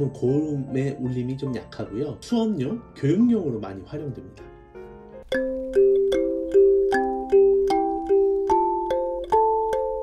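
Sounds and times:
kalimba melody: 5.2s - 10.0s.

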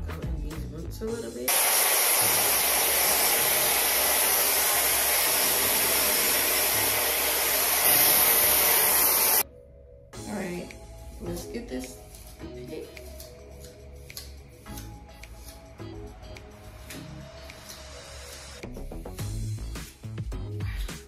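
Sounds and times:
hair dryer blowing air: 1.5s - 9.4s.

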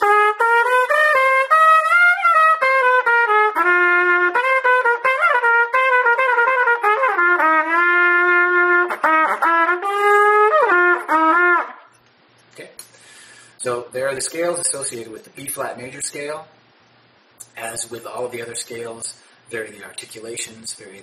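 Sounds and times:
trumpet playing blues scale: 0.0s - 12.0s.

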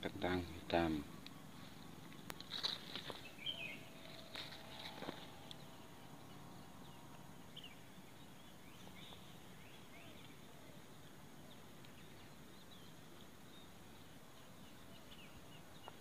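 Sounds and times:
faint bird chirps: 0.0s - 16.0s
faint steady hiss: 0.0s - 16.0s.

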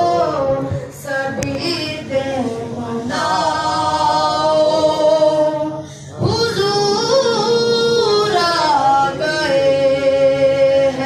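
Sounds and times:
person singing devotional song: 0.0s - 11.0s.

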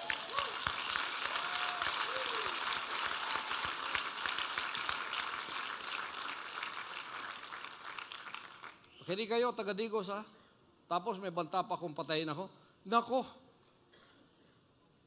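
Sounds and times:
crowd clapping: 0.0s - 9.0s.

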